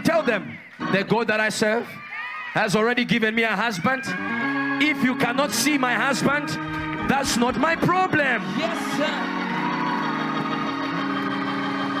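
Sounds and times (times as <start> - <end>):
organ holding chords: 0.0 - 2.0, 2.7 - 12.0.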